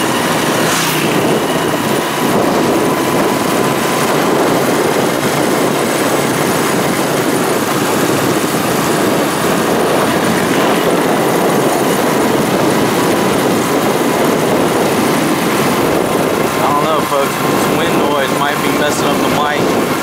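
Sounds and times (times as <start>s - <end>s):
motorcycle engine cruising: 0.0s - 20.0s
wind on microphone: 0.0s - 20.0s.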